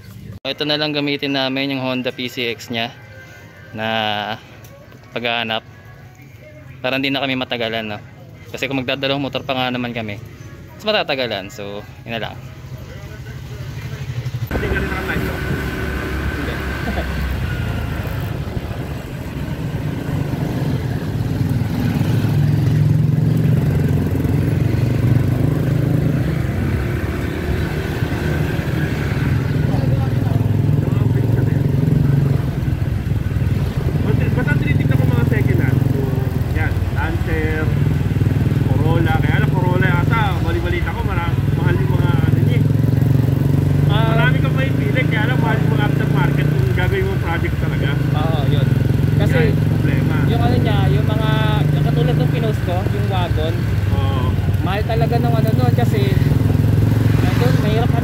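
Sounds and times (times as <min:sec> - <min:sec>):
road noise: 0:00.0 - 0:58.0
people talking: 0:10.8 - 0:17.3, 0:29.4 - 0:32.6, 0:33.8 - 0:37.8, 0:38.7 - 0:42.7, 0:43.9 - 0:56.3, 0:57.1 - 0:58.0
scooter engine drone: 0:12.7 - 0:58.0.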